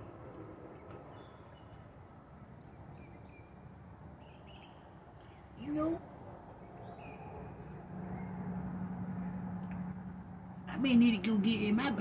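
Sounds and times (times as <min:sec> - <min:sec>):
distant bird chirps: 0:00.0 - 0:10.5.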